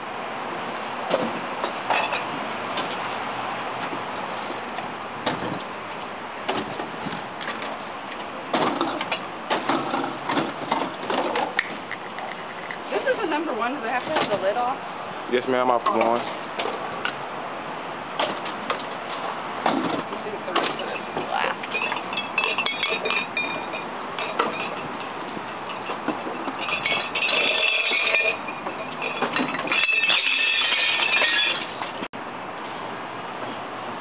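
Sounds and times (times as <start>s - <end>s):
glass bottles clattering into dumpster: 1.9s - 2.3s, 19.7s - 32.1s
bottles clicking and knocking: 8.5s - 13.1s, 19.7s - 32.1s.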